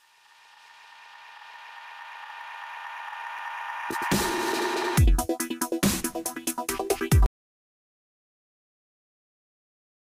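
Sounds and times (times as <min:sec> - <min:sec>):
electronic riser chord with hiss: 0:00.0 - 0:05.2.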